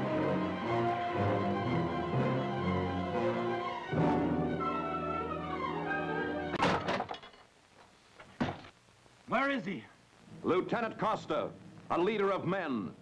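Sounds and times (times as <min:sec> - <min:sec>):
dramatic orchestral music: 0:00.0 - 0:06.6
door banging: 0:06.6 - 0:07.3.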